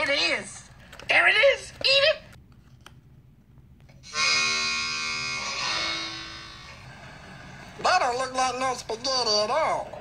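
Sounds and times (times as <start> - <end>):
harmonica chords: 4.0 - 7.0.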